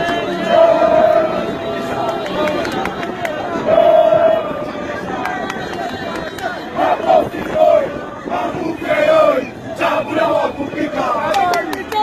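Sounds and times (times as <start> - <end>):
crowd of men shouting: 0.0 - 12.0.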